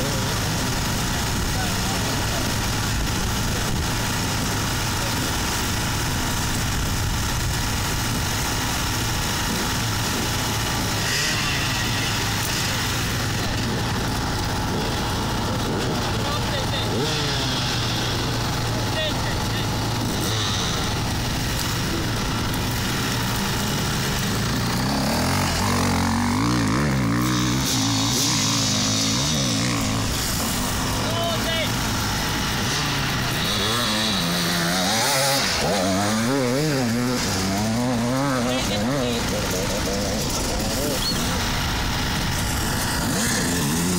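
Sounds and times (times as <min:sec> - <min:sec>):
dirt bike engine idling and revving: 0:00.0 - 0:43.9.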